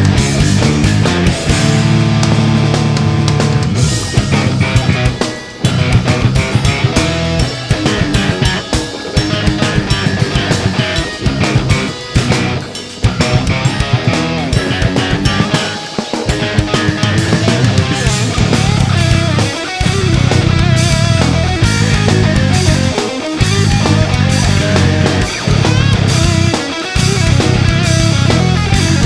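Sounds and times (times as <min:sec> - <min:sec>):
progressive metal band playing: 0:00.0 - 0:29.0.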